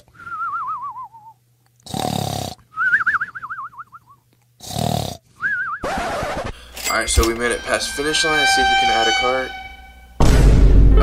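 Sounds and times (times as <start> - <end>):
cartoon snoring: 1.8 - 2.6, 4.6 - 5.2.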